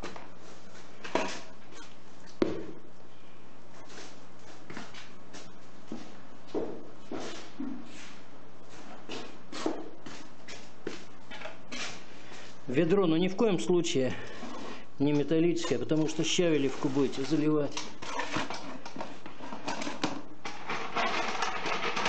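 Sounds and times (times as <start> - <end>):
steady low hum: 0.0 - 20.8.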